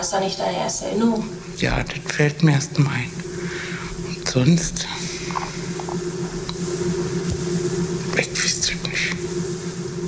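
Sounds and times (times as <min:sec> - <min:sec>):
low hum: 0:00.0 - 0:10.0
recording hiss: 0:00.0 - 0:10.0.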